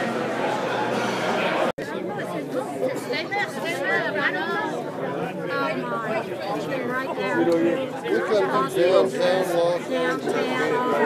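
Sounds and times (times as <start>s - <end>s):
indistinct chatter in echoing room: 0.0s - 11.0s
people talking: 0.0s - 11.0s.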